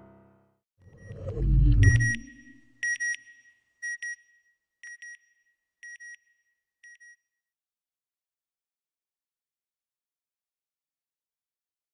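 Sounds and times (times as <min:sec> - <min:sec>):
low whoosh: 0:01.0 - 0:02.6
electronic double beep: 0:01.0 - 0:02.7.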